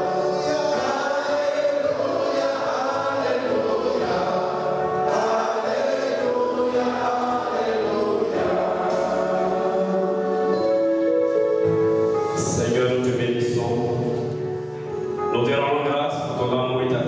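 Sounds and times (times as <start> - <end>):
congregation singing: 0.0 - 15.4.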